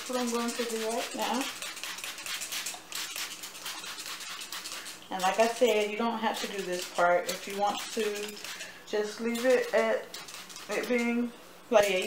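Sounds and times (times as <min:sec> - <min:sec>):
spray bottle squirting water: 0:00.0 - 0:12.0.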